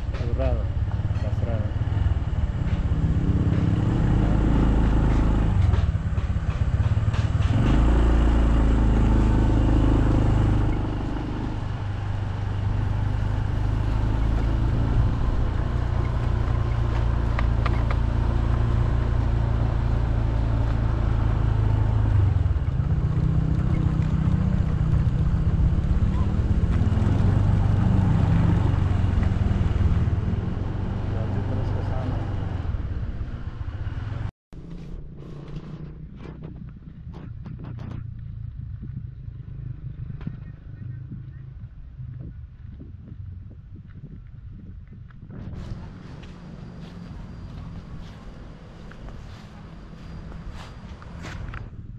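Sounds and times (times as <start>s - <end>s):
wind rumble on microphone: 0.0s - 51.9s.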